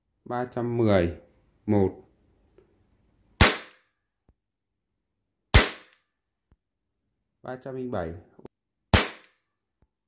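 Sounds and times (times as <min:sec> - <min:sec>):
airsoft pistol shots: 0:03.4 - 0:03.9, 0:05.5 - 0:06.0, 0:08.9 - 0:09.4.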